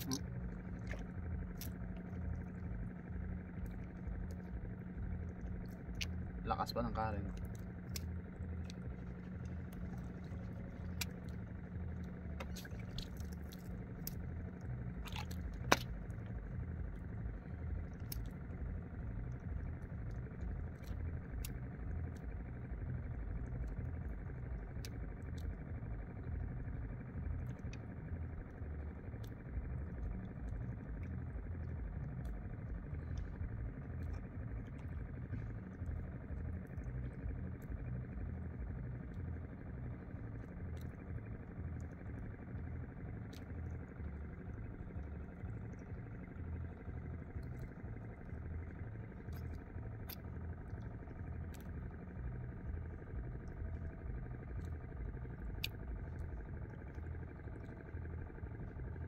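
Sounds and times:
steady low rumble: 0.0 - 59.0.

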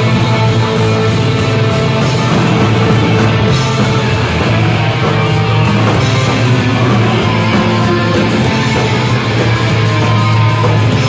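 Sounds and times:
punk rock band playing: 0.0 - 11.0.

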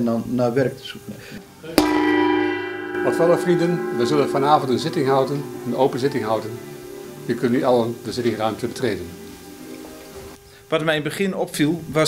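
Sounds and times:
hand-held gong ringing: 1.8 - 9.6.

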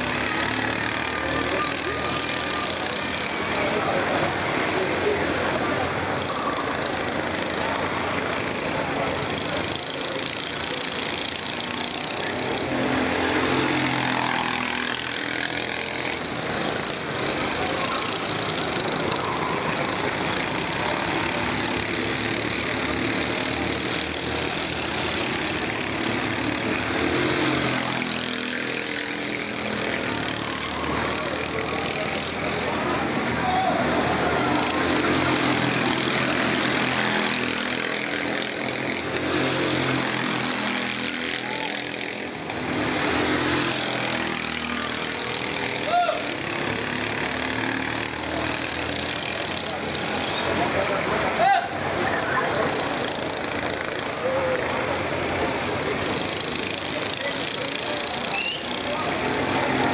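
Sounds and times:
go-kart engines racing: 0.0 - 59.9.

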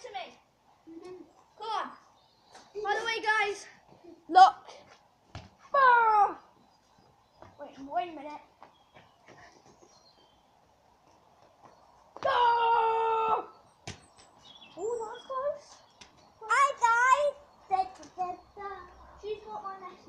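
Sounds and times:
child calling and shouting: 0.0 - 2.1, 2.7 - 4.9, 5.6 - 6.6, 12.2 - 13.6, 14.8 - 20.0.

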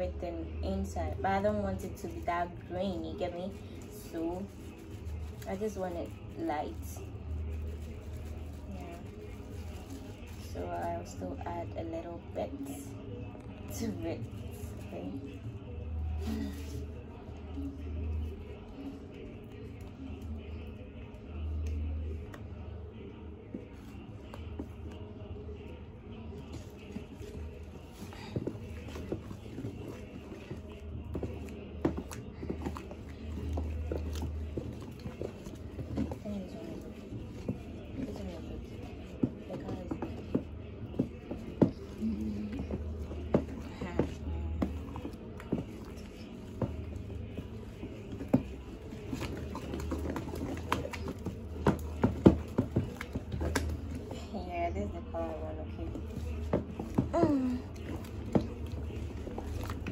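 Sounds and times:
background music: 0.0 - 59.9
voices: 0.0 - 59.9
spoon stirring thick liquid: 0.2 - 54.2, 55.7 - 59.9.

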